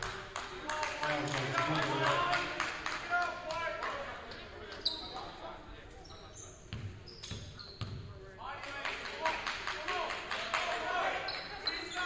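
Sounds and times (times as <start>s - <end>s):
sneaker squeaks: 4.3s - 8.2s, 11.2s - 12.0s.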